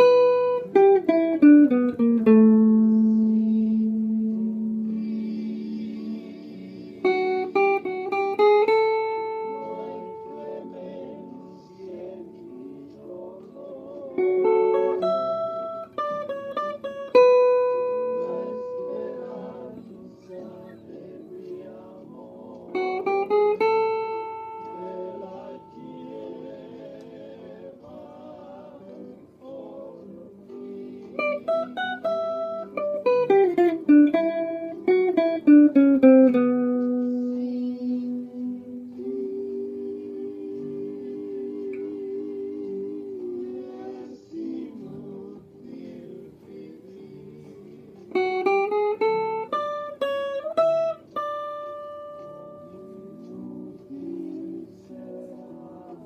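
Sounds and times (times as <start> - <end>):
electric guitar plucked notes: 0.0 - 6.1, 14.2 - 19.8, 31.2 - 39.1, 48.1 - 54.7
backing track music: 0.0 - 56.0.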